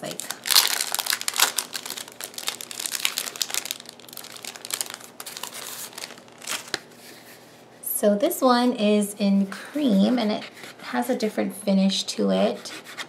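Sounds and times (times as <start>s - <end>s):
plastic wrapper crinkling: 0.0s - 6.9s.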